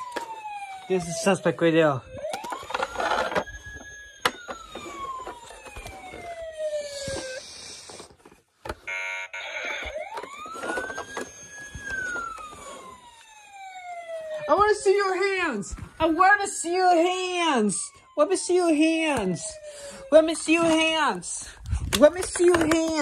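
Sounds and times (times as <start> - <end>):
police siren wailing: 0.0 - 23.0.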